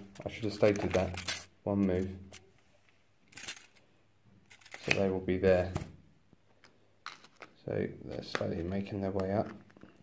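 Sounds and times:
person speaking: 0.0s - 2.5s, 4.7s - 6.0s, 7.4s - 9.8s.

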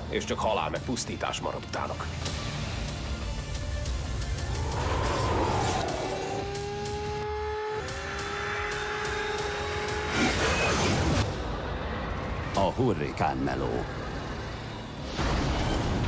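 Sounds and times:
music: 0.0s - 11.4s
rising drone: 3.9s - 8.2s
swooping whoosh: 4.3s - 6.8s.

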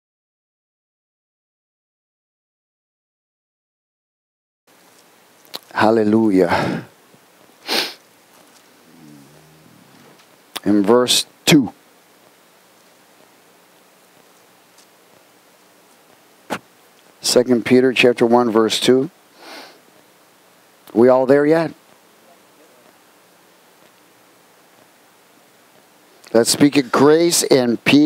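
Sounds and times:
low room background: 4.7s - 14.9s
man speaking: 5.6s - 6.9s, 8.7s - 11.8s
person sniffing: 7.6s - 8.0s, 8.7s - 10.2s, 19.4s - 19.8s.

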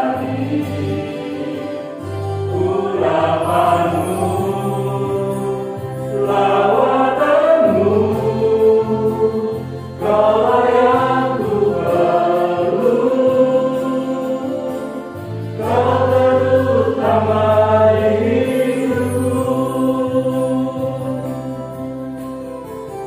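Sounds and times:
vocal group singing in harmony: 0.0s - 22.5s
electronic keyboard: 0.0s - 23.0s.

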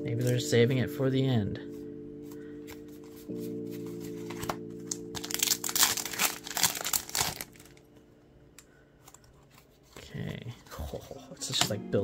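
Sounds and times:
background music with held chords: 0.0s - 9.0s, 11.3s - 12.0s
foil wrapper crinkling and tearing: 4.9s - 7.8s.

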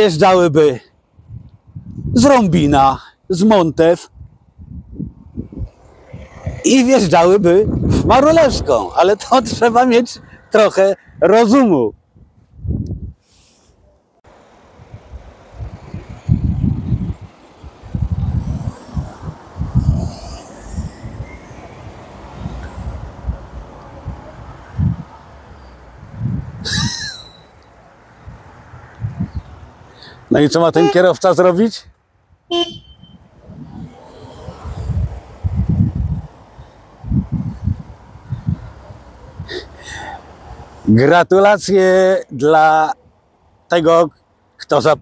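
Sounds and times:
wind buffeting microphone: 1.1s - 2.8s, 4.1s - 11.3s, 11.9s - 13.2s, 14.8s - 27.1s, 28.2s - 29.7s, 32.6s - 39.6s
faint traffic noise: 5.0s - 11.9s, 13.7s - 44.9s
car driving past: 5.7s - 7.1s
car horn toot: 30.7s - 31.2s, 32.5s - 33.2s.

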